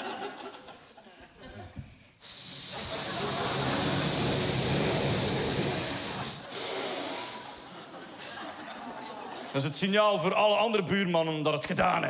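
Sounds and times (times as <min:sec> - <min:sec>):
man hissing into microphone: 0:02.2 - 0:07.8.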